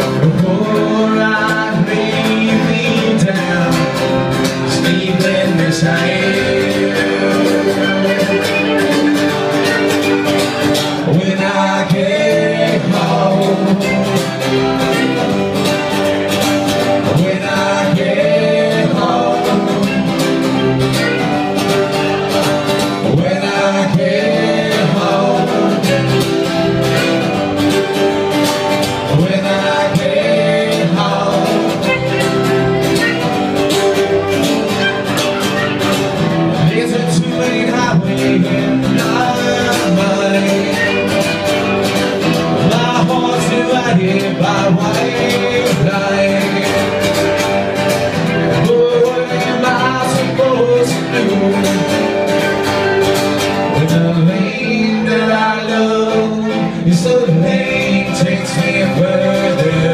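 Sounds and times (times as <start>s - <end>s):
acoustic guitars strumming: 0.0s - 59.9s
men singing: 0.0s - 59.9s
fiddle: 31.4s - 36.5s.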